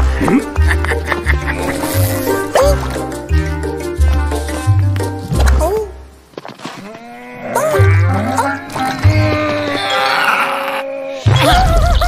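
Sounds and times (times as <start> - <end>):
film score music: 0.0 - 6.6, 7.5 - 10.4
cartoon character groaning: 7.5 - 11.8.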